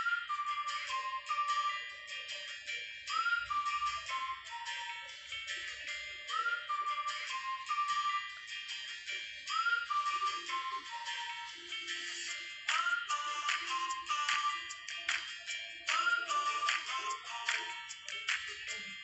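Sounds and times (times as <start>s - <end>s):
light steady beat: 0.0s - 19.0s
whistle-like melody: 0.0s - 19.0s.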